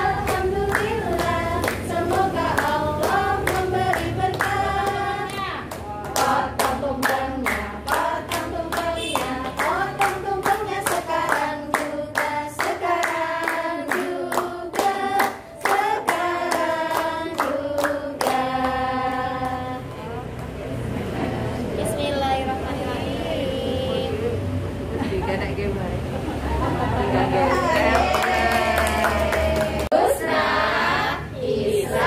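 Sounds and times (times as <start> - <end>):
group singing: 0.0 - 22.0, 28.2 - 32.0.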